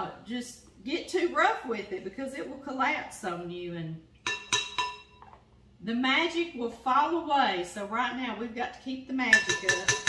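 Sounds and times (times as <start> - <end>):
spoon clinking against glass bowl: 4.2 - 5.3, 9.3 - 10.0.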